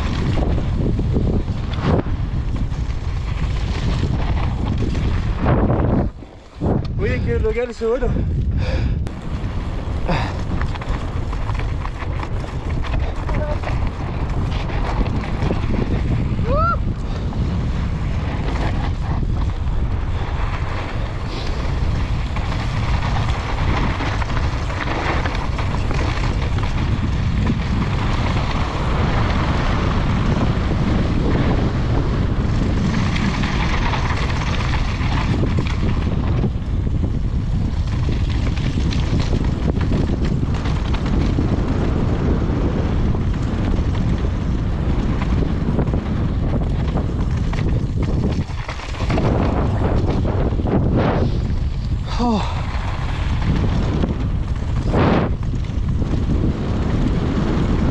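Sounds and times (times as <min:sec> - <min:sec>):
wind buffeting microphone: 0:00.0 - 0:57.9
tyres rolling over gravel: 0:09.1 - 0:57.9.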